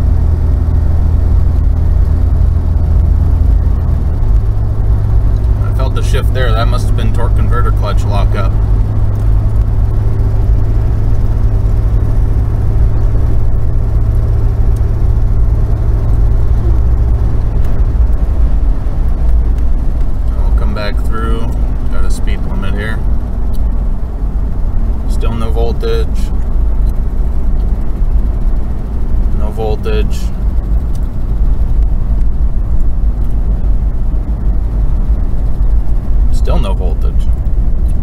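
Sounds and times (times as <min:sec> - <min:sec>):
car engine at cruise: 0:00.0 - 0:38.0
road noise: 0:00.0 - 0:38.0
steady low hum: 0:00.0 - 0:38.0.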